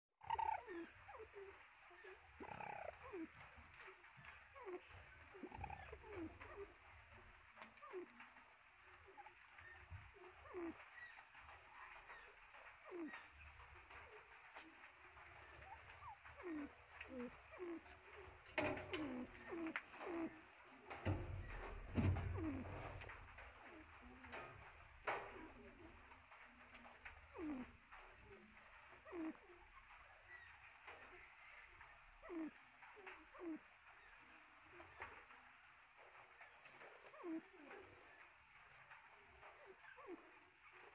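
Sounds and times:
faint bird calls: 0.2 - 40.9.

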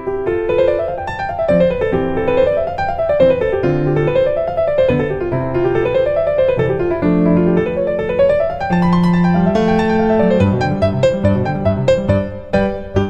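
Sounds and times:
piano music: 0.0 - 13.0.

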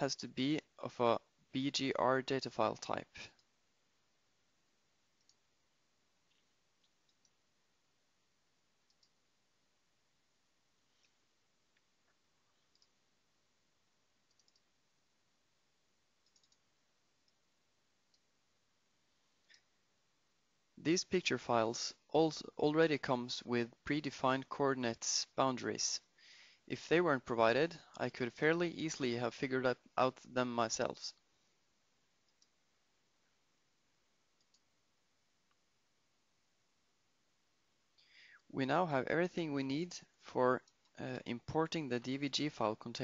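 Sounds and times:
computer mouse clicks: 5.2 - 5.4, 6.3 - 7.4, 8.8 - 9.2, 11.8 - 13.0, 14.3 - 14.7, 16.2 - 17.4.

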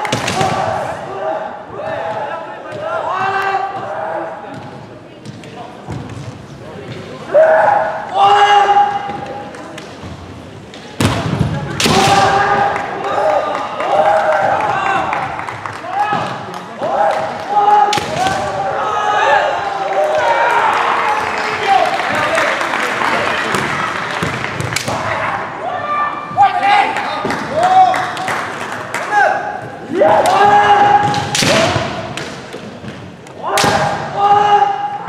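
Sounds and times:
bamboo sword strikes: 31.2 - 32.3.

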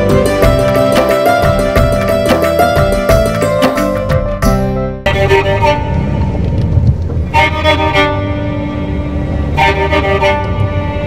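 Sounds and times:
background music: 0.0 - 11.0
vehicle horns honking: 5.0 - 6.4, 7.2 - 11.0
low traffic rumble: 5.0 - 11.0.

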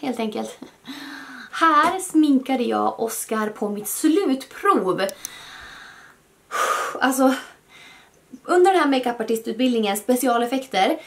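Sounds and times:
woman breathing: 0.8 - 1.6, 5.2 - 8.2.

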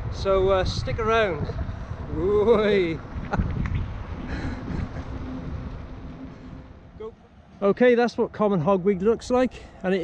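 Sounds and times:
wind buffeting microphone: 0.0 - 7.1.

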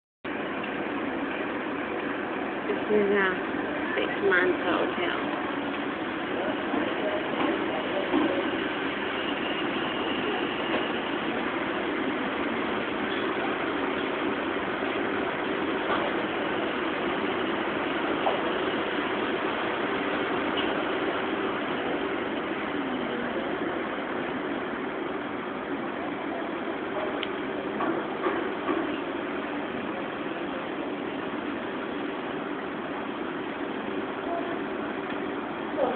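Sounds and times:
background hum and hiss: 0.3 - 35.9.

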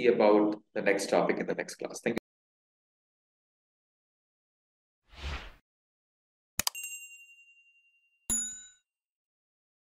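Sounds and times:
bell-like ding: 6.6 - 8.9.

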